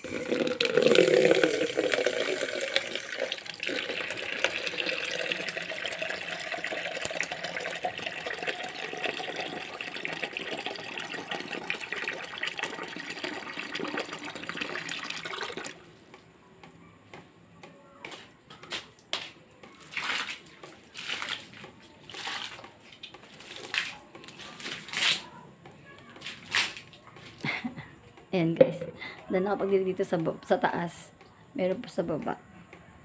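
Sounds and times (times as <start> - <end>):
water running and splashing: 0.0 - 15.9, 19.8 - 25.2.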